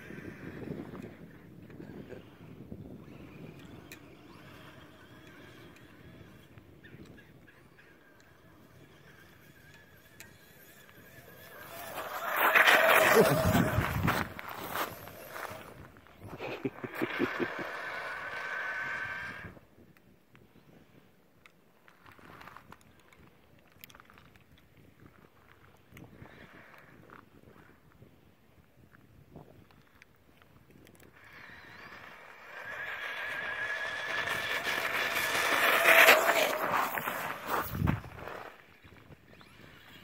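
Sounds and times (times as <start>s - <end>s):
rc truck electric motor whining: 0.0s - 15.9s, 17.2s - 19.6s, 31.0s - 38.5s.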